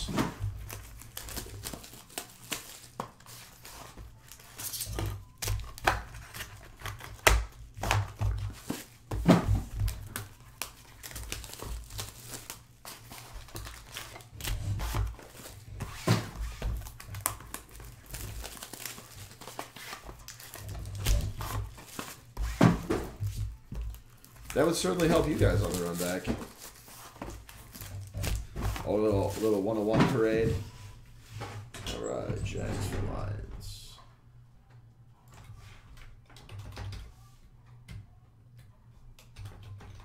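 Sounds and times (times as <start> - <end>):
foil wrappers crinkling: 0.4 - 29.9.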